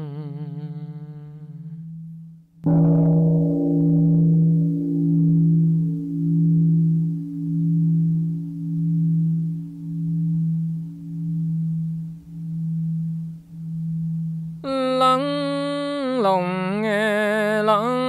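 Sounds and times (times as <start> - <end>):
temple bell ringing: 2.7 - 14.6.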